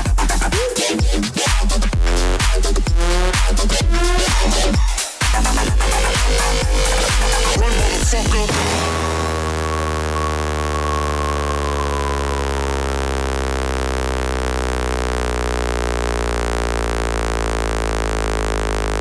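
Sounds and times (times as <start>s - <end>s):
droning synthesizer bass note: 0.0s - 19.0s.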